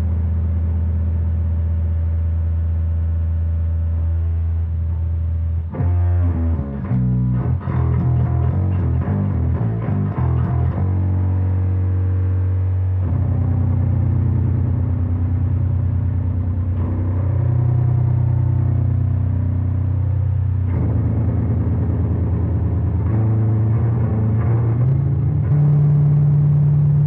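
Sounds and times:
electric bass long low notes: 0.0 - 27.0.

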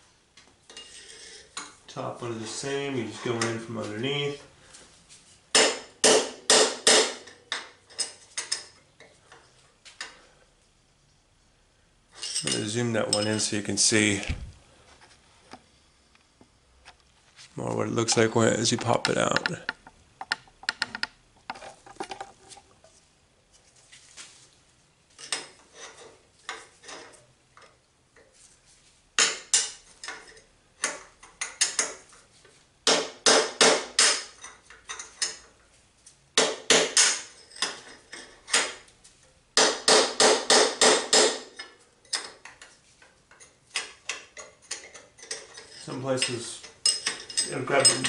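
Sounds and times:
hammer striking steel punch: 5.5 - 7.2, 39.6 - 41.5.

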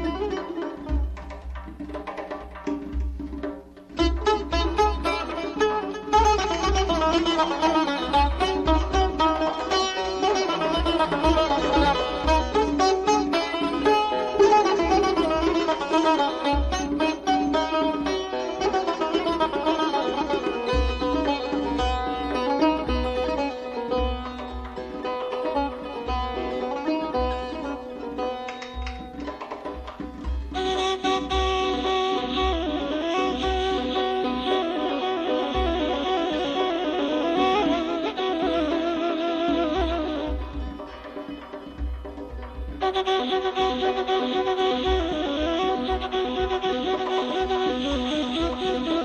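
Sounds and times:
hand drum strokes: 0.0 - 49.0.

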